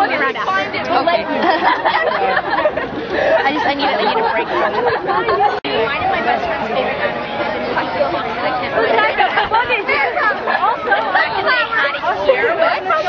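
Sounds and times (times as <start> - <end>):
group of people chattering: 0.0 - 13.0.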